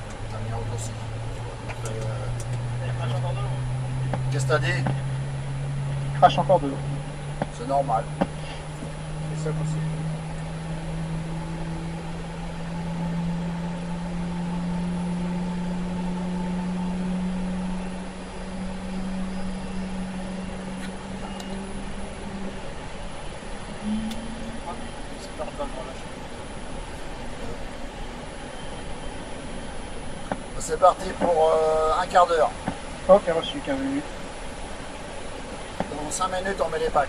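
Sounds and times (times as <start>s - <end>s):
background rush: 0.0s - 37.0s
jet engine spooling up: 0.0s - 37.0s.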